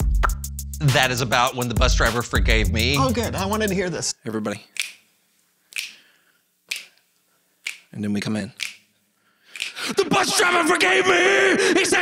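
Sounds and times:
finger snaps: 0.2 - 0.4, 4.8 - 5.0, 5.7 - 6.0, 6.7 - 7.0, 7.6 - 7.9, 8.6 - 8.8, 9.5 - 9.8.

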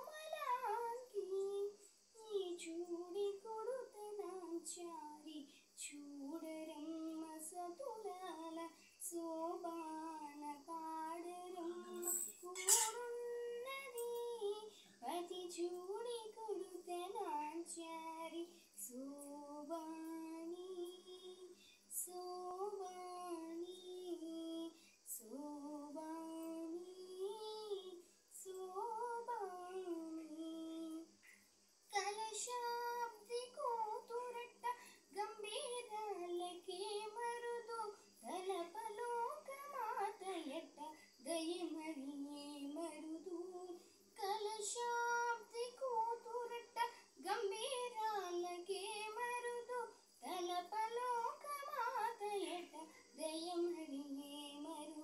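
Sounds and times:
girl singing unaccompanied: 0.0 - 55.0.

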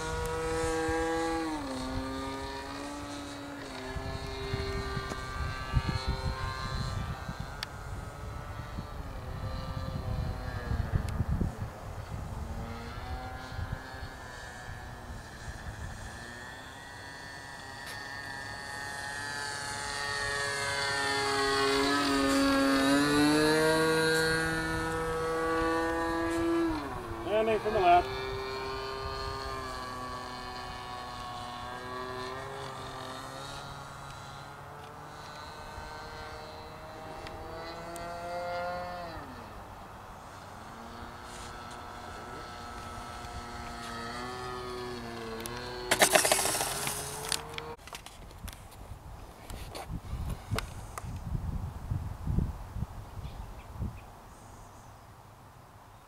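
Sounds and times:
aircraft engine droning: 0.0 - 48.5
wind rumbling on microphone: 0.0 - 54.2.

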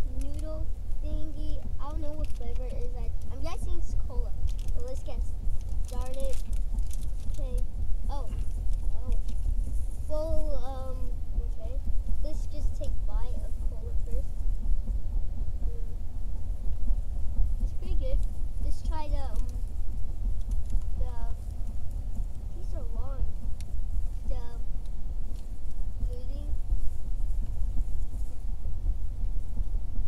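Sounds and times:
voices: 0.0 - 6.5, 7.2 - 9.3, 10.0 - 14.3, 17.6 - 19.7, 20.9 - 21.4, 22.4 - 23.4, 24.2 - 24.7, 26.0 - 26.5.

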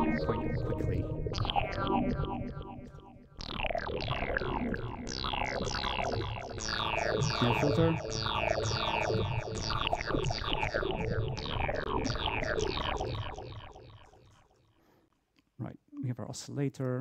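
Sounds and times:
synthesizer notes sweeping down: 0.0 - 14.4.

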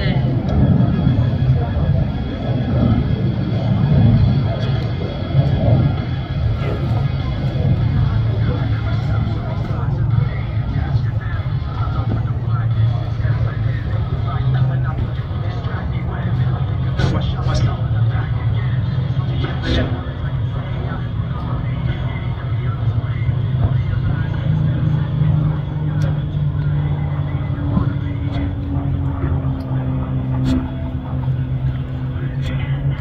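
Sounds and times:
crowd voices: 0.0 - 33.0
distant jet engine rumble: 0.0 - 33.0.

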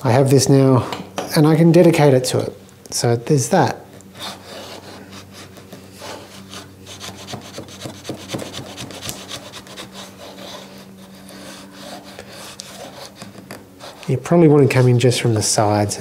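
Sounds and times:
blade scraping wood: 4.0 - 15.2.

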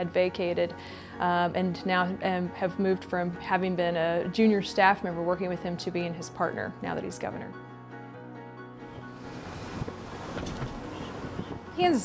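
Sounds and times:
background music: 0.0 - 12.0
wind and road noise: 8.9 - 12.0.

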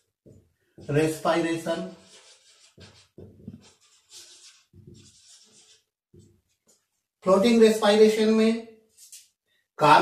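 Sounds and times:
marker writing on whiteboard: 0.0 - 7.0.

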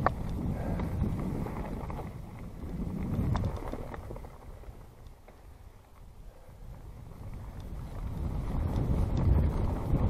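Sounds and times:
bike clicks and rattles: 0.0 - 10.0
bike tyres on dirt and leaves: 0.0 - 10.0
wind on microphone: 0.0 - 10.0.

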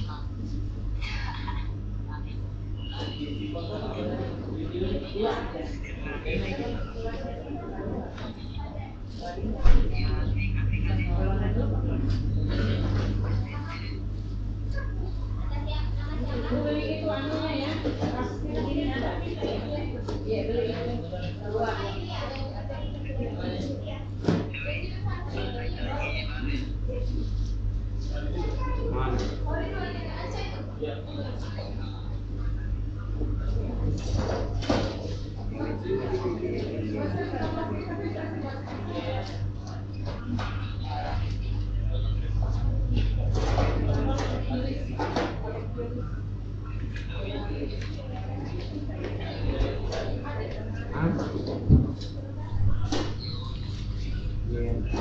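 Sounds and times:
indistinct chatter of customers: 0.0 - 55.0
steady low hum: 0.0 - 55.0.

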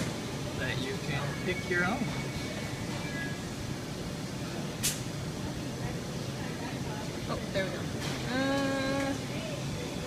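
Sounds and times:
restaurant low rumble: 0.0 - 10.0.

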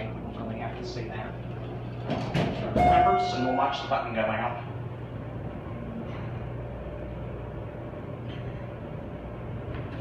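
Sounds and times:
elevator hum and rumble: 0.0 - 10.0.

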